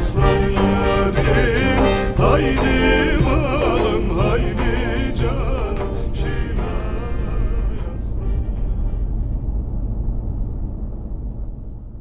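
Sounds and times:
car road and engine rumble: 4.4 - 12.0.

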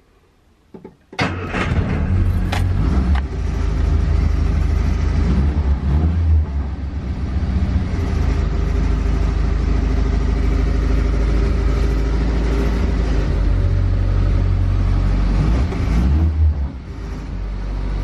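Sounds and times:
car engine revving and idling: 1.4 - 18.0.

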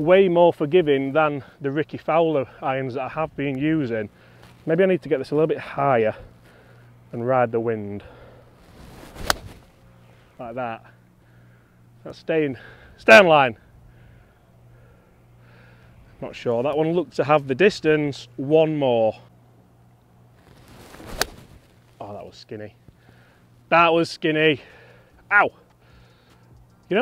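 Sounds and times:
golf club swish: 8.6 - 9.9, 20.4 - 21.7
club striking golf ball: 9.1 - 9.7, 21.0 - 21.4
club striking golf ball click: 21.1 - 21.4.

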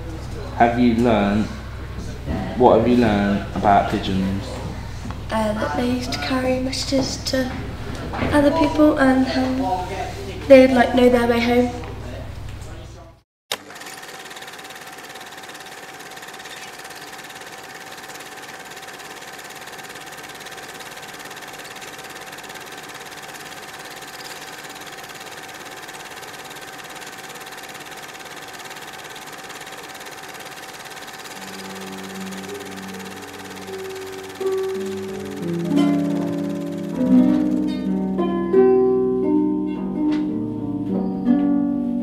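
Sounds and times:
mechanical whirring with hiss: 14.2 - 37.7.

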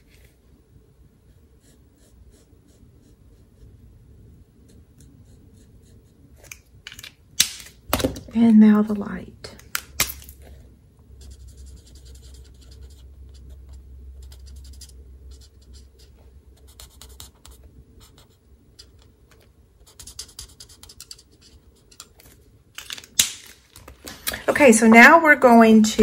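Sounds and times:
marker scratching on cardstock: 1.3 - 3.7, 11.2 - 19.2, 19.8 - 22.2.

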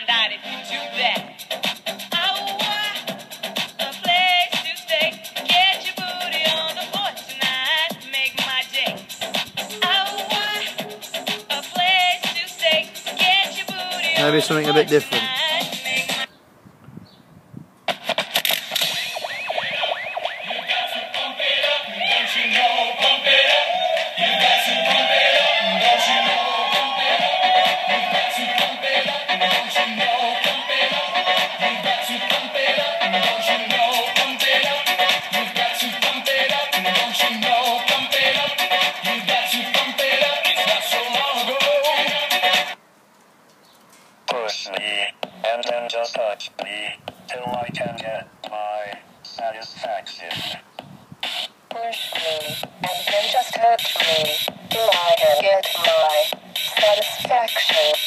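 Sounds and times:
dance music through portable speaker: 0.0 - 16.3, 17.9 - 42.8, 44.3 - 58.0.

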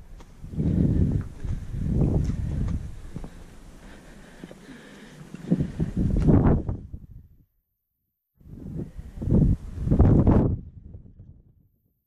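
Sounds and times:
wind buffeting microphone: 0.0 - 3.5, 5.3 - 7.4, 8.4 - 11.8.

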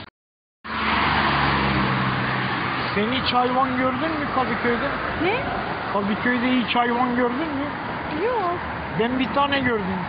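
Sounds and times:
traffic rushing: 0.6 - 10.0
vehicle engine humming: 0.7 - 10.0.

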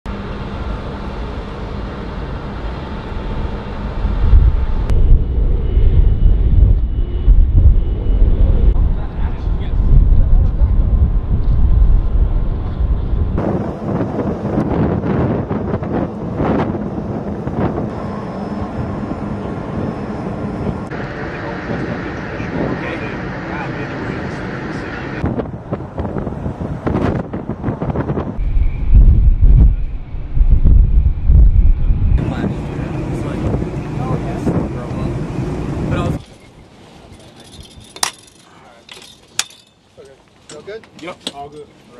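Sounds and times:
steady background hum: 0.1 - 25.2
wind buffeting microphone: 0.1 - 36.7
indistinct voices: 17.9 - 25.2.

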